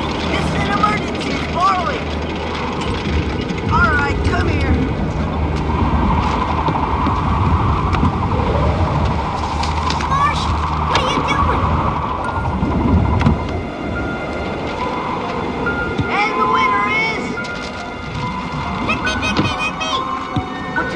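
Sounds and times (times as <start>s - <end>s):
storm wind rumble: 0.0s - 20.9s.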